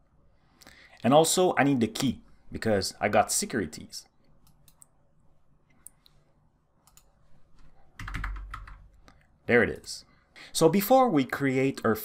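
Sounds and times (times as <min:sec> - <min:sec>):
keyboard keystrokes: 0:08.0 - 0:08.8.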